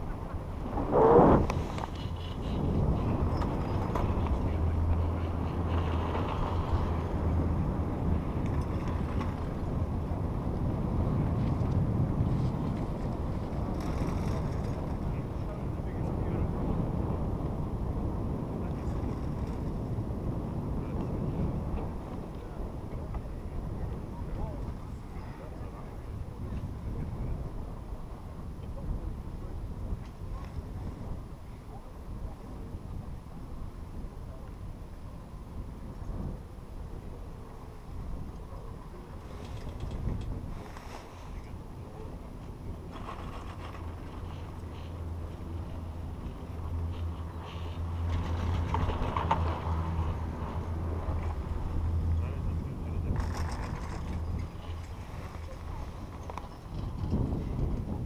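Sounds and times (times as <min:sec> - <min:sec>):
wind buffeting microphone: 0:00.0 - 0:58.0
chairlift running: 0:41.0 - 0:58.0.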